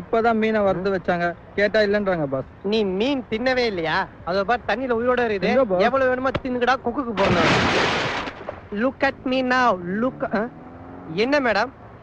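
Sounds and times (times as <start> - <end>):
voices talking: 0.0 - 7.6, 8.4 - 11.8.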